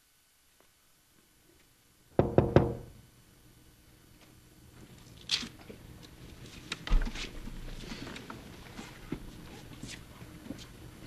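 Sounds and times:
knocks on a wooden door: 2.2 - 2.9.

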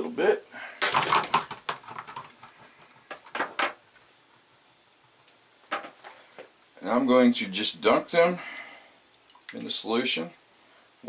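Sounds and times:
plastic tray clattering knocks: 0.8 - 2.3, 3.1 - 3.8.

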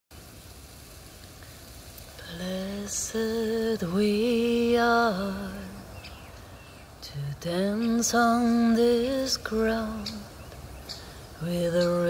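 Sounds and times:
low outdoor rumble: 0.1 - 12.0.

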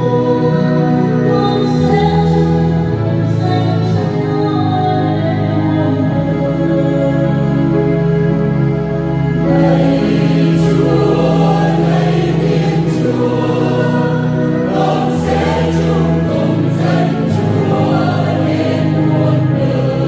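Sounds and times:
held low notes: 8.2 - 20.0
mixed choir singing: 9.4 - 20.0.

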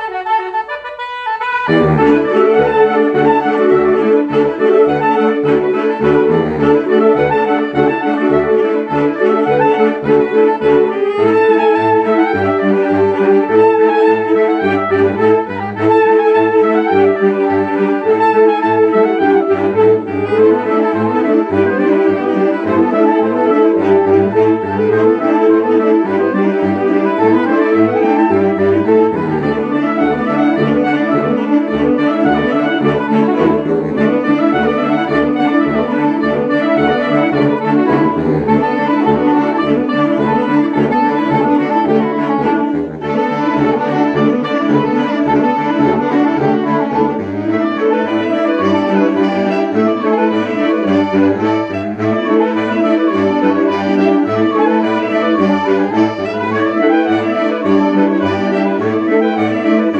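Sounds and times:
saxophone ensemble playing: 0.0 - 59.9.

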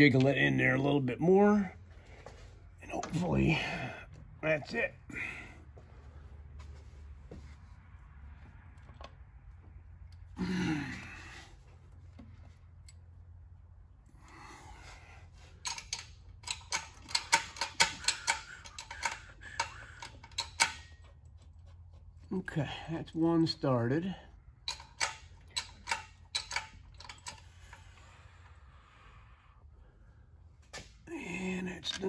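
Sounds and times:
metallic clicks and taps of bolt: 15.6 - 21.5, 24.6 - 27.8.

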